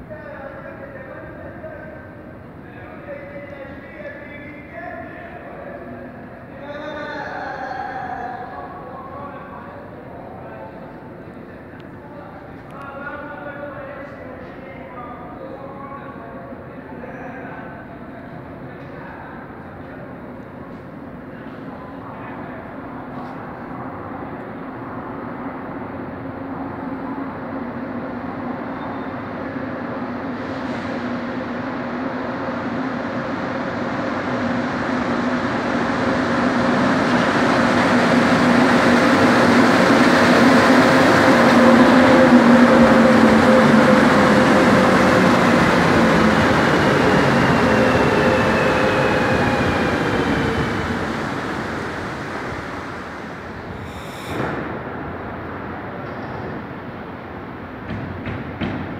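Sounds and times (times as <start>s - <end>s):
metro train arriving: 0.0s - 58.9s.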